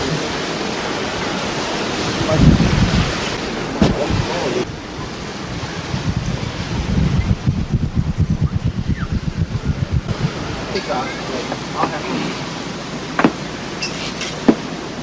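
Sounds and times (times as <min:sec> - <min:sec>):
low wind buffeting: 0:00.0 - 0:15.0
surf: 0:00.0 - 0:15.0
wind on microphone: 0:00.0 - 0:15.0.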